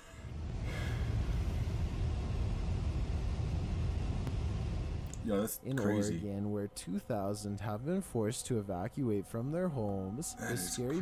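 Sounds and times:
wind and fire rumble: 0:00.0 - 0:05.5.

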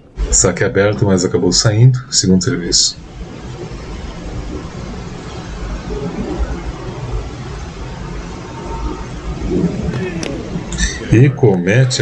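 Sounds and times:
crowd murmur: 0:03.1 - 0:12.0.

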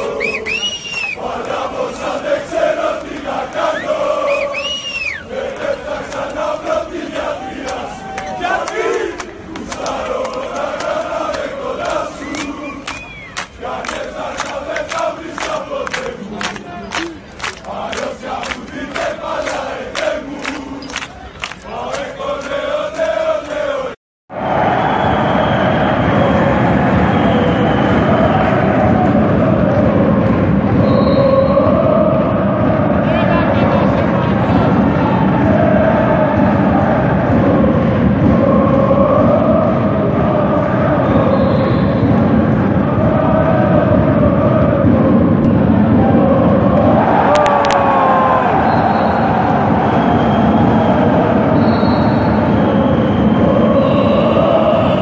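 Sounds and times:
crowd chanting and singing: 0:00.0 - 0:55.0.

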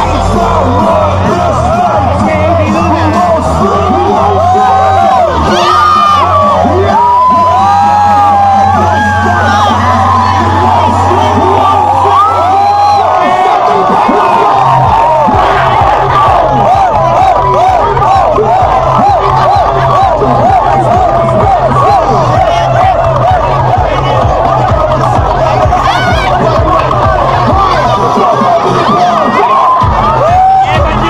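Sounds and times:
crowd shouting and cheering: 0:00.0 - 0:31.0
loud dance music: 0:00.0 - 0:31.0.

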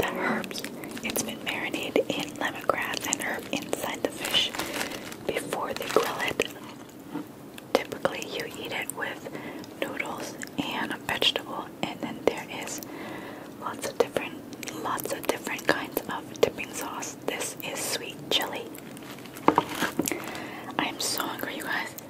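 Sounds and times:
close whispering: 0:00.0 - 0:06.8, 0:07.7 - 0:12.9, 0:20.2 - 0:22.0.

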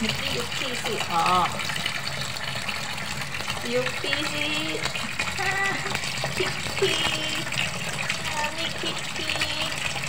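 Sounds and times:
tap water running into metal sink: 0:00.0 - 0:10.0.

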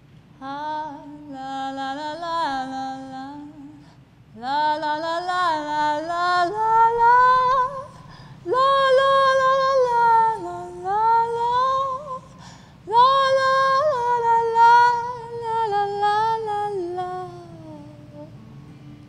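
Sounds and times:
woman singing: 0:00.4 - 0:18.3
singer breathing: 0:08.0 - 0:08.5, 0:12.3 - 0:12.8.

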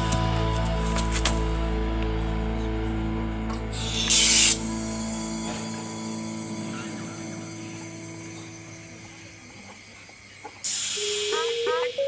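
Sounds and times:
background music: 0:00.0 - 0:09.4
gas spraying hiss: 0:03.8 - 0:04.9, 0:10.6 - 0:11.6.

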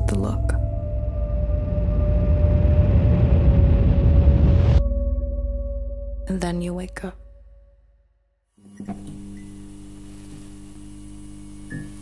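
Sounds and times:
neon sign electrical hum: 0:08.6 - 0:12.0
faint hiss: 0:08.8 - 0:12.0.

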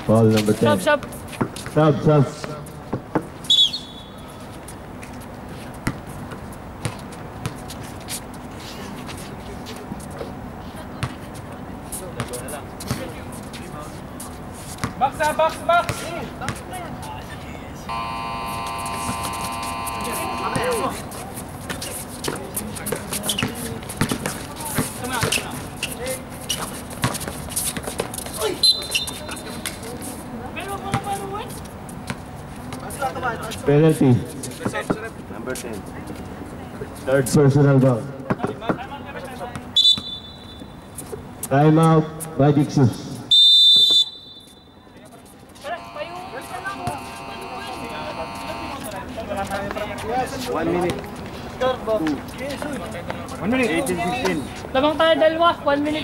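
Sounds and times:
shoe squeaks: 0:03.4 - 0:04.4, 0:17.9 - 0:29.9, 0:39.7 - 0:41.2, 0:43.3 - 0:49.1
hum of held tones: 0:17.8 - 0:21.4, 0:45.6 - 0:49.1
indistinct voices: 0:17.8 - 0:26.1, 0:45.5 - 0:50.0
electronic game buzzer: 0:17.9 - 0:21.0, 0:45.7 - 0:48.9
players shouting: 0:17.9 - 0:21.1, 0:45.7 - 0:48.9
basketball bouncing: 0:22.9 - 0:25.5, 0:46.7 - 0:47.2.

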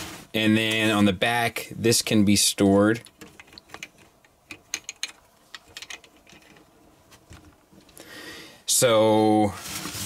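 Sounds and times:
plastic parts clicking: 0:02.9 - 0:06.7.

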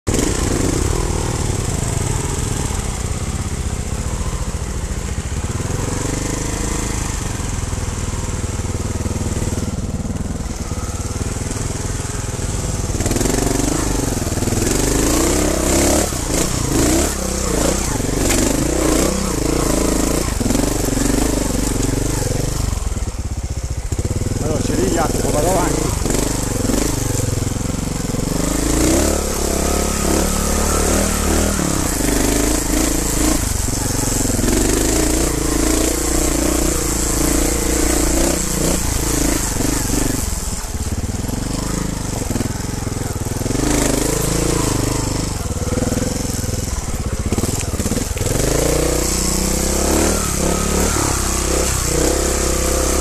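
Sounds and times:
motorcycle engine revving: 0:00.0 - 0:53.0.

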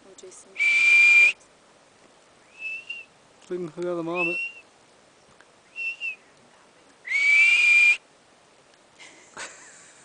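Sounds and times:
marmot whistling: 0:02.5 - 0:03.1, 0:04.1 - 0:04.7, 0:05.7 - 0:06.2, 0:07.1 - 0:08.0.

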